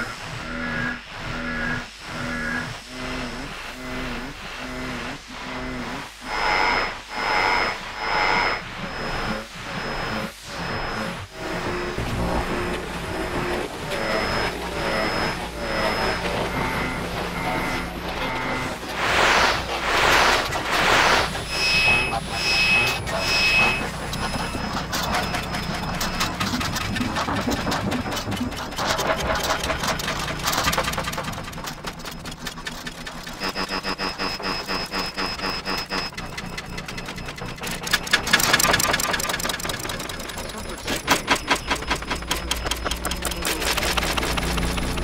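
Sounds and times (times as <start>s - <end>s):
rapid buzzing pulse: 0.0s - 45.0s
steady radio whistle: 7.6s - 45.0s
short beeps: 21.5s - 26.8s, 33.2s - 39.4s, 40.2s - 44.3s.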